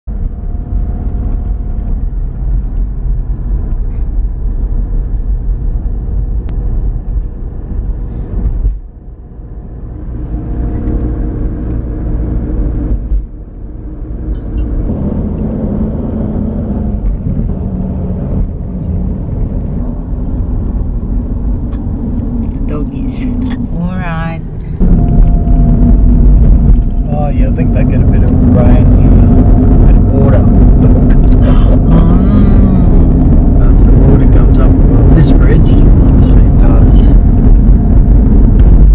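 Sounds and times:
car engine and tyre rumble: 0.0 - 38.9.

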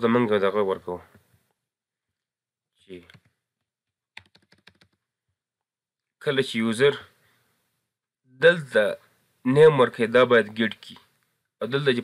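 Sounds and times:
computer keyboard typing: 4.2 - 5.0.

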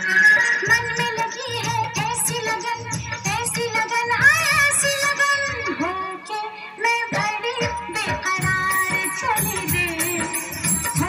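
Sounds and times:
person singing: 0.0 - 11.0
steady drum beat: 7.6 - 11.0.

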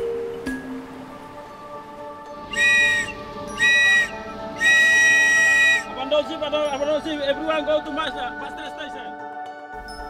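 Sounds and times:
soft background music: 0.0 - 10.0
whistle blasts: 2.5 - 6.2.

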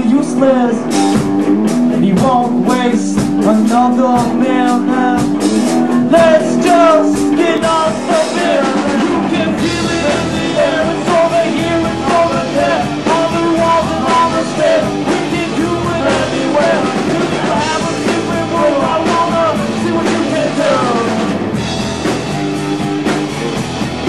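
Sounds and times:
rock band playing live: 0.0 - 24.0.

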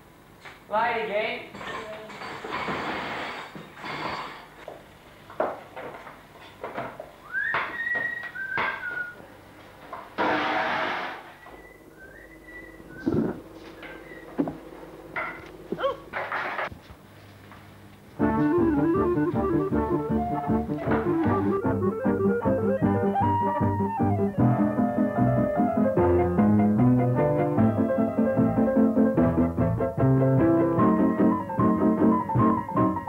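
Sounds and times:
dishes and utensils clattering: 1.5 - 4.6, 15.2 - 15.5, 16.1 - 16.7
instrumental music: 18.2 - 33.0.

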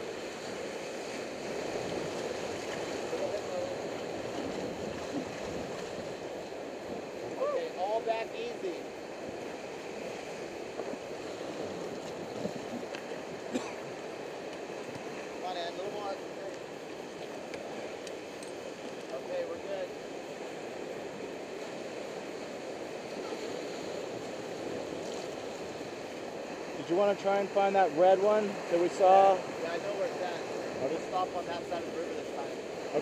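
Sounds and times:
whitewater rapids churning: 0.0 - 33.0.

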